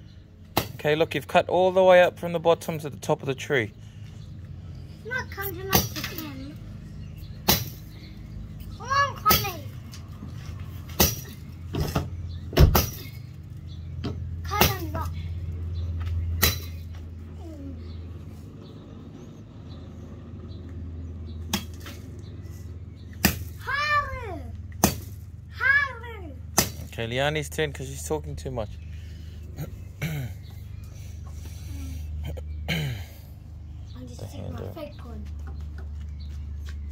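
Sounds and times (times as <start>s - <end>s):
machete chopping tree trunk: 0.5s - 0.8s, 7.4s - 7.8s, 10.9s - 13.2s, 16.4s - 16.8s, 21.5s - 22.0s, 23.2s - 23.6s, 24.8s - 25.2s, 26.6s - 26.9s.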